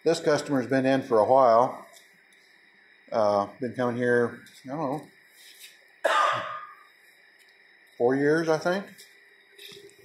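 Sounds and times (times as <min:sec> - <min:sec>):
man coughing: 0:06.1 - 0:06.8.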